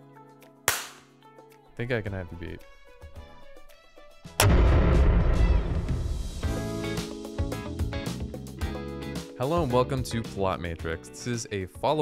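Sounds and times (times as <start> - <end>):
loud hand clap with deep boom: 4.4 - 6.7.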